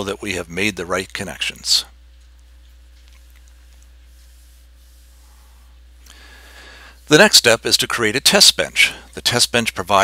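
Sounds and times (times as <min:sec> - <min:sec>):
low electrical hum: 0:00.0 - 0:10.0
faint hiss: 0:04.0 - 0:09.9.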